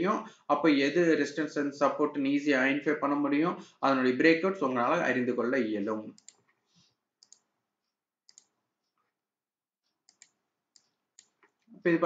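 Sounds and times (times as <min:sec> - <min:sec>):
computer mouse clicks: 0:06.2 - 0:06.6, 0:07.2 - 0:07.5, 0:08.2 - 0:08.6, 0:09.8 - 0:11.7.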